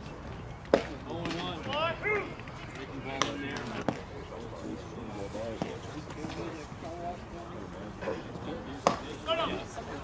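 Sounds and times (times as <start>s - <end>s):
indistinct chatter of voices: 0.8s - 10.0s.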